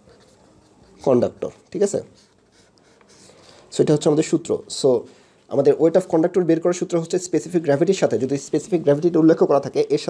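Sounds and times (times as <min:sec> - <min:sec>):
pen scratching on paper: 0:00.0 - 0:03.4
man speaking: 0:01.0 - 0:02.3, 0:03.7 - 0:10.0.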